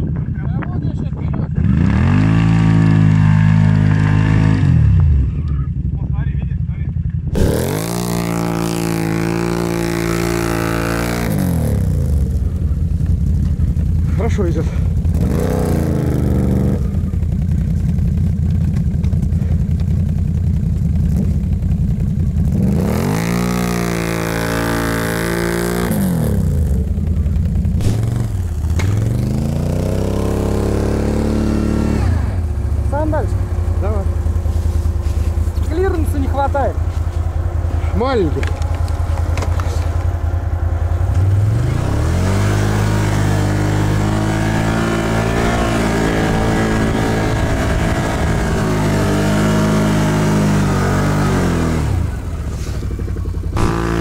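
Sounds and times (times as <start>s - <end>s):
atv engines revving: 0.0s - 54.0s
engine idling: 4.8s - 44.7s, 45.5s - 54.0s.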